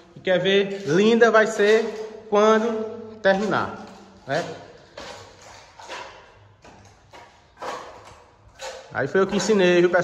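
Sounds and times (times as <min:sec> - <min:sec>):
trowel scraping putty on wall: 0:04.5 - 0:10.0.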